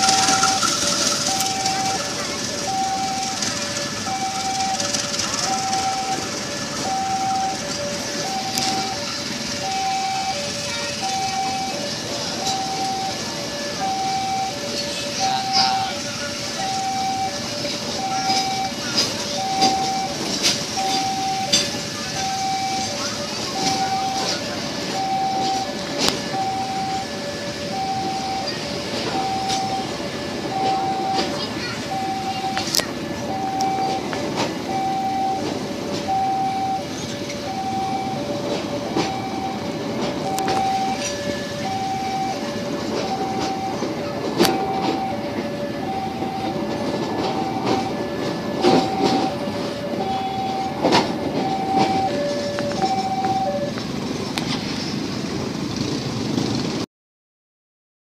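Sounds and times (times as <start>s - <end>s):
level crossing two-note alarm: 0.0s - 53.8s
train coaches rumbling: 0.0s - 56.8s
train wheel clack: 0.0s - 56.8s.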